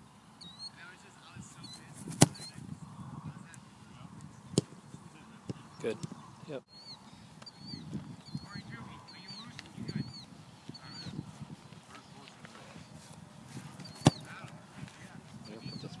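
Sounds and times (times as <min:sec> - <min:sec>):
bird chirping: 0:00.0 - 0:02.6, 0:04.2 - 0:14.5, 0:15.4 - 0:16.0
foot kicking football: 0:01.8 - 0:02.6, 0:13.0 - 0:15.0.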